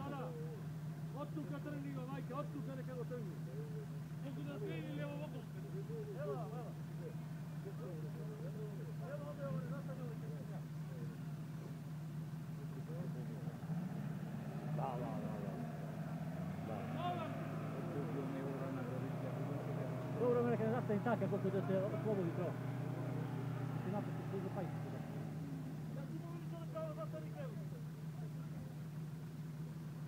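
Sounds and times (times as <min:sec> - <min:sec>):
people talking: 0:00.0 - 0:11.8, 0:12.5 - 0:13.8, 0:14.6 - 0:15.9, 0:16.6 - 0:28.9
engine running low hum: 0:00.0 - 0:30.0.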